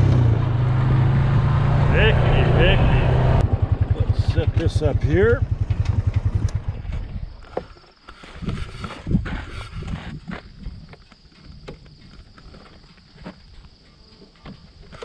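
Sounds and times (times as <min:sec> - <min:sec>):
atv engine running: 0:00.0 - 0:07.6
rustles: 0:06.8 - 0:11.4.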